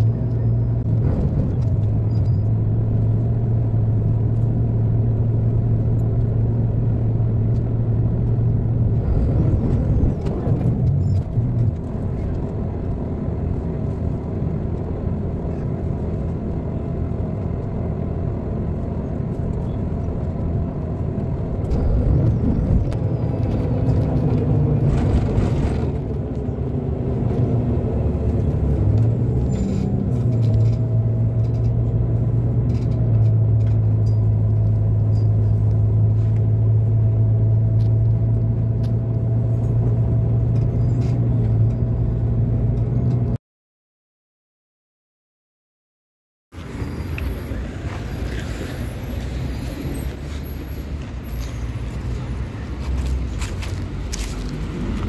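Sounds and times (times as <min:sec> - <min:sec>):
bus engine low hum: 0:00.0 - 0:43.4, 0:46.6 - 0:55.0.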